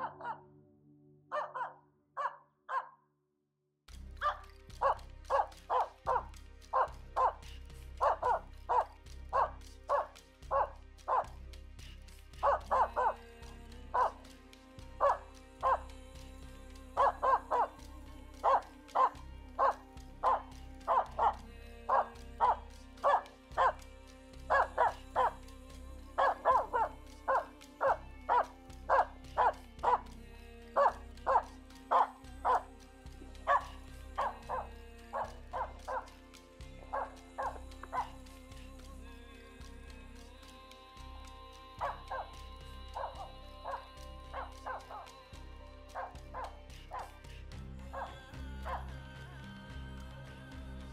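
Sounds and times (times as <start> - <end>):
dog barking rapidly: 0.0 - 0.4, 1.3 - 3.0, 4.2 - 7.4, 8.0 - 11.3, 12.4 - 13.2, 14.0 - 14.2, 15.0 - 15.8, 18.4 - 23.8, 24.5 - 25.3, 26.2 - 30.0, 30.8 - 32.6, 33.5 - 34.6, 35.2 - 36.1
background music: 0.0 - 2.4, 3.9 - 50.9.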